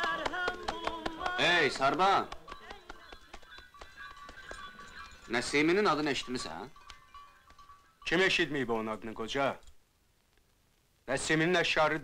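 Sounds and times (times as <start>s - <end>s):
bells ringing: 0.0s - 9.3s.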